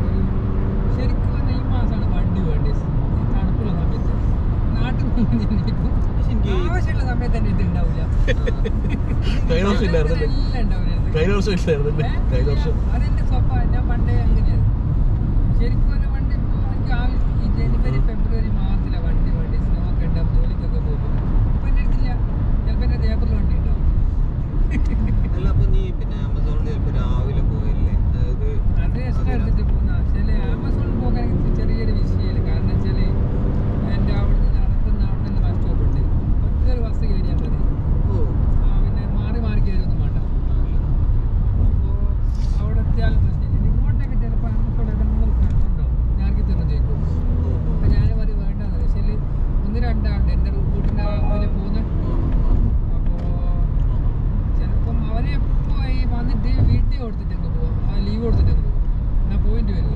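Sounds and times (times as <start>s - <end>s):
car driving tyre and engine rumble: 0.0s - 59.9s.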